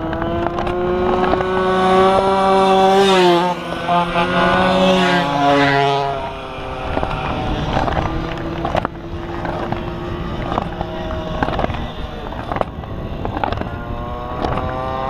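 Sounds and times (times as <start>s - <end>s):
distant moped engines droning: 0.0s - 15.0s
wind rumble on microphone: 4.4s - 15.0s.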